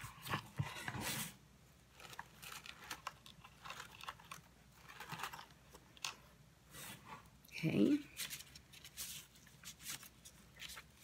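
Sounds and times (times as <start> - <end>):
tissue paper rustling: 8.1 - 11.0.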